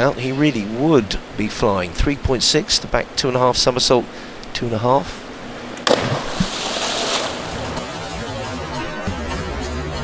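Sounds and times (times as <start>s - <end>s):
pool water rushing and churning: 0.0s - 9.1s
diver entry splash: 5.8s - 8.3s.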